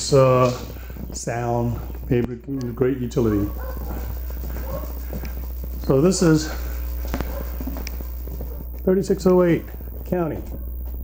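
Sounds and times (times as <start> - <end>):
faint television news voices: 0.0 - 11.0
steady low hum: 0.0 - 11.0.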